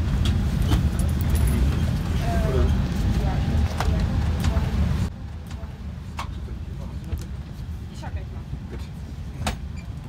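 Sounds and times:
air conditioning rumble: 0:00.0 - 0:10.0.

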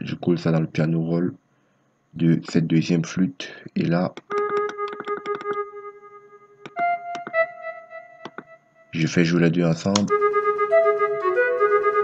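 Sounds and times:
synthesized instrument notes: 0:04.2 - 0:09.1.

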